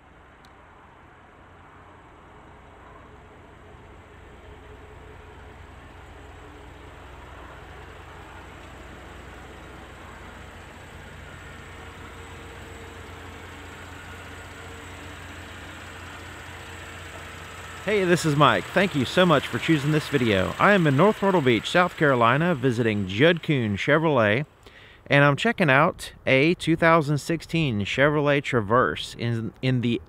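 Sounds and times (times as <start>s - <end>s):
car engine idling: 0.0s - 25.5s.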